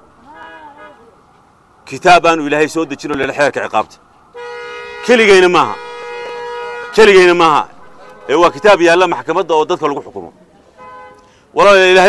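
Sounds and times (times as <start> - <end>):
vehicle horn long note: 4.4 - 9.0, 10.8 - 11.3
man's voice: 6.9 - 10.3.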